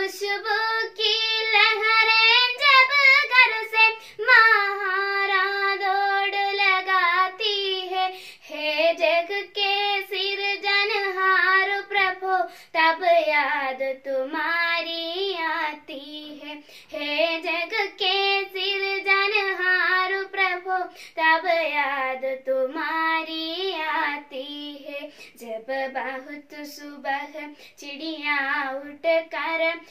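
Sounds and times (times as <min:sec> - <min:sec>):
girl singing unaccompanied: 0:00.0 - 0:29.9.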